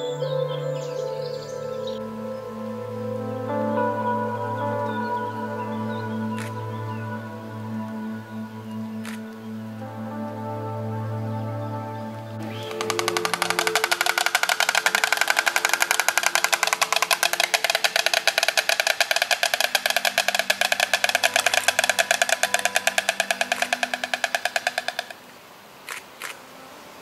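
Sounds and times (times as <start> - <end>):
soft background music: 0.0 - 27.0
stork bill clattering: 12.4 - 25.2.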